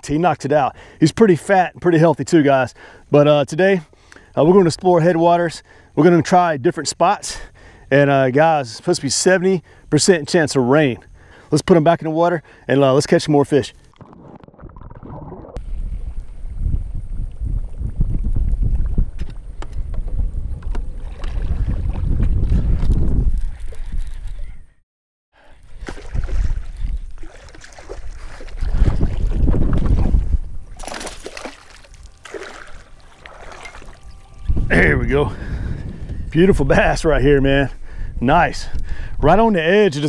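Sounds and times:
wind buffeting microphone: 0:15.0 - 0:24.8, 0:25.7 - 0:31.0, 0:32.7 - 0:39.9
water lapping against boat hull: 0:17.6 - 0:24.4, 0:25.6 - 0:34.2
fish splashing at surface: 0:30.8 - 0:34.1.

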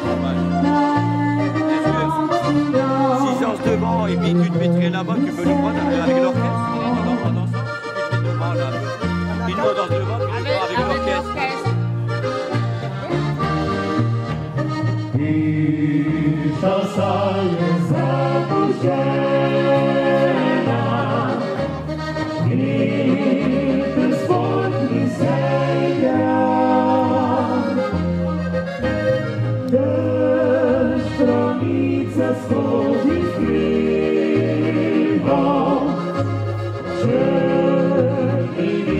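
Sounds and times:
accordion folk dance music: 0:00.0 - 0:38.9
bass line: 0:00.0 - 0:38.9.

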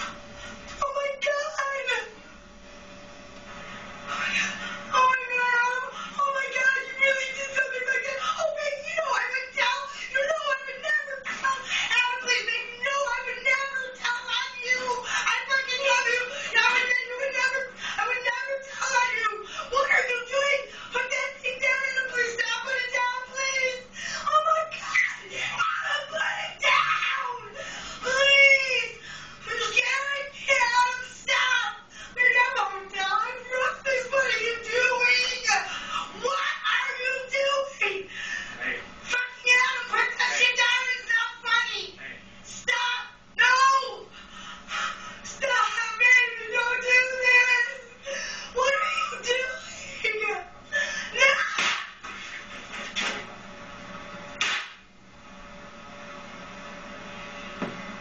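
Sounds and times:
woman screaming: 0:05.0 - 0:37.8, 0:42.6 - 0:44.1, 0:45.4 - 0:51.8.

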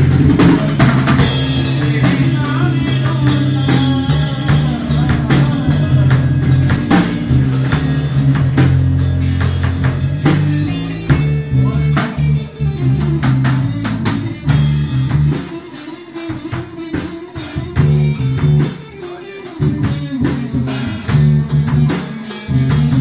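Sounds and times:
drum kit: 0:00.0 - 0:23.0
electric bass: 0:00.0 - 0:23.0
electric guitar: 0:00.0 - 0:23.0.

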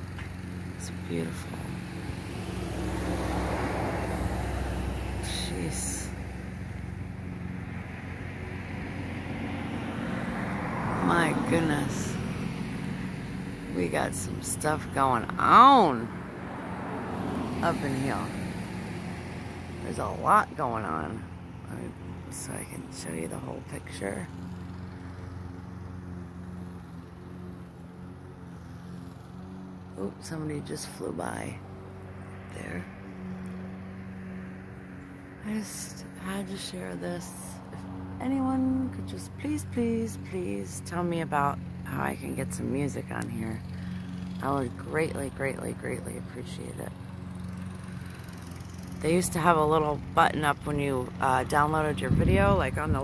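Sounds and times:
road traffic hum: 0:00.0 - 0:53.0.

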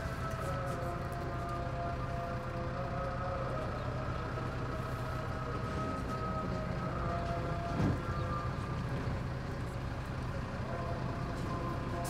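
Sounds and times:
bus engine drone: 0:00.0 - 0:12.0.

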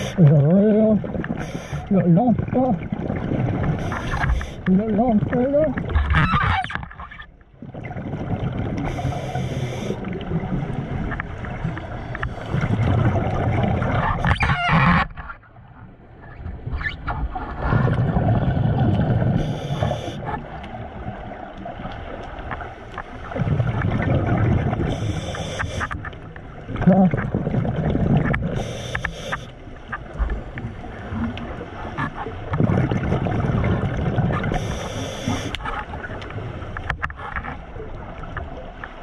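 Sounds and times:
diver breathing through regulator: 0:00.0 - 0:00.2, 0:08.8 - 0:10.1, 0:19.4 - 0:20.2, 0:24.9 - 0:26.0, 0:28.5 - 0:29.5, 0:34.5 - 0:35.6
bubbling rumble: 0:04.7 - 0:09.1, 0:10.0 - 0:19.6, 0:23.3 - 0:25.2, 0:26.6 - 0:28.6, 0:30.0 - 0:34.5.

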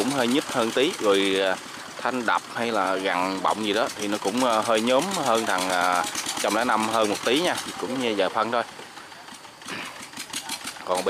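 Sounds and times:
engine idling with ticking: 0:00.0 - 0:11.0.

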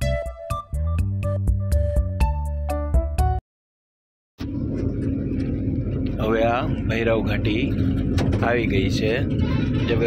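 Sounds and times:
van engine hum and road rumble: 0:04.4 - 0:10.0.

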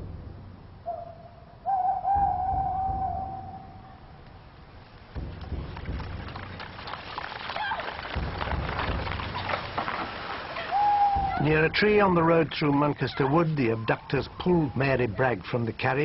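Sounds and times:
low rumbles: 0:00.0 - 0:16.0
owl hooting: 0:00.8 - 0:04.1, 0:10.6 - 0:11.6
crackling patter: 0:04.2 - 0:16.0.

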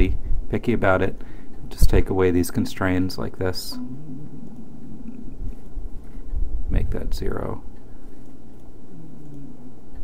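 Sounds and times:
faint hum: 0:00.0 - 0:10.0
steady low rumble: 0:00.0 - 0:10.0.

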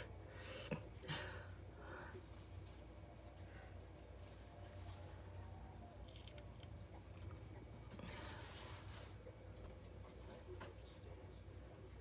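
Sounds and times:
gel mask crackling peeled off: 0:05.9 - 0:06.8
soft rustle: 0:07.8 - 0:11.0.

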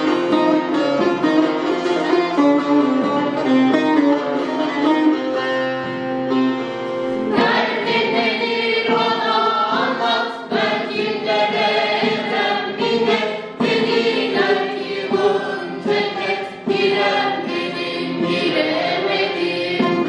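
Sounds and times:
group singing a folk song: 0:07.2 - 0:20.0.

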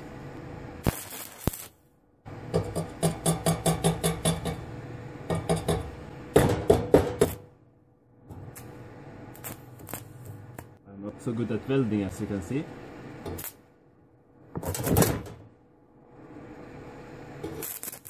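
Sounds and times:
welding arc crackling and popping: 0:00.8 - 0:07.5, 0:08.3 - 0:10.8, 0:13.2 - 0:13.7, 0:17.3 - 0:18.0.

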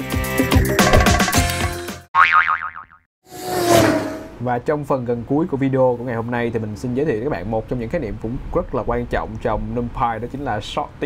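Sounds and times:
springy boing with wobbling pitch: 0:02.2 - 0:03.0
whoosh: 0:03.3 - 0:04.4.

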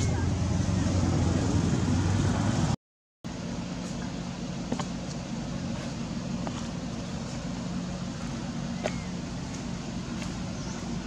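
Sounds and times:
outdoor background hum: 0:00.0 - 0:11.0.

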